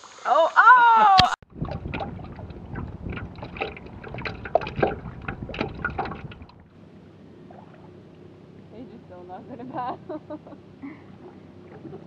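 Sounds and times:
river water splashing: 0:01.4 - 0:08.1
low wind rumble: 0:01.4 - 0:12.0.

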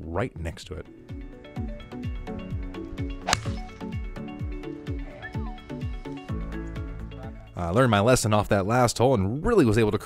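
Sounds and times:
background music with beat: 0:01.1 - 0:07.6
golf club striking ball: 0:03.2 - 0:04.0.

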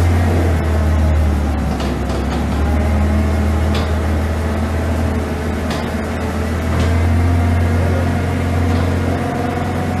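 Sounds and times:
forklift engine running: 0:00.0 - 0:10.0.

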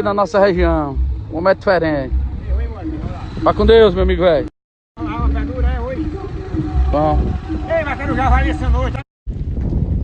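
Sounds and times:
people talking: 0:00.0 - 0:09.0.

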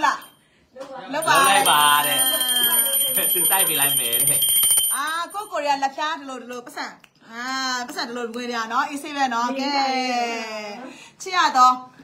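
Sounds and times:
brass hand bell ringing: 0:01.2 - 0:05.6.

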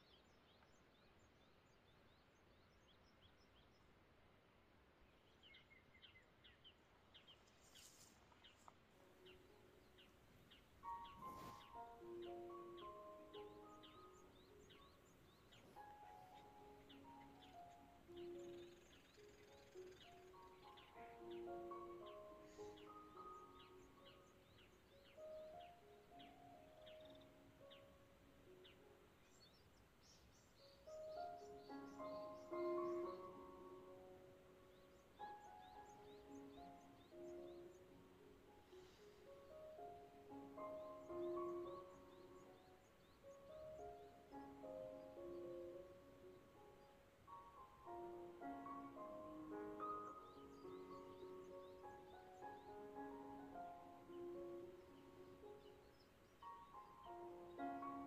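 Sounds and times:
faint bird chirping: 0:00.0 - 0:58.0
soft slow melody: 0:07.6 - 0:58.0.

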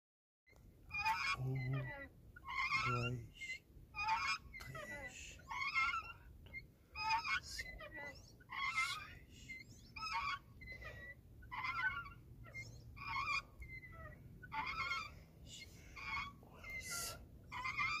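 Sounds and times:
swing hangers creaking and squeaking: 0:00.9 - 0:18.0.

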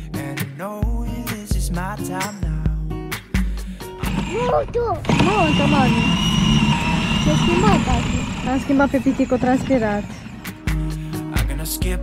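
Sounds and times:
toy motorcycle motor whine: 0:04.0 - 0:10.8
small child's voice: 0:04.3 - 0:05.1.

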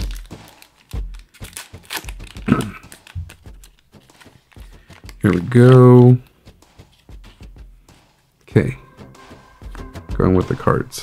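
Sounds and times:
foil wrapper crinkling: 0:00.0 - 0:05.4.

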